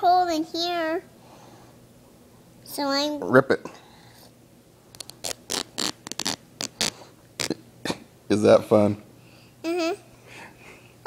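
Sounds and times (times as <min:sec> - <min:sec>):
cloth ripping: 0:05.0 - 0:07.6.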